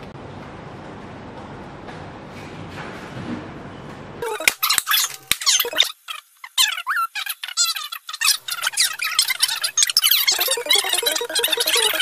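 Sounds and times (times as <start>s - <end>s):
faint room hum: 0.0s - 12.0s
marker squeaking on a whiteboard: 4.2s - 10.9s.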